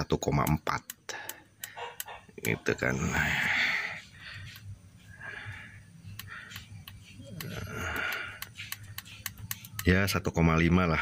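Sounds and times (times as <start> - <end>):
light clicks: 6.0 - 10.2.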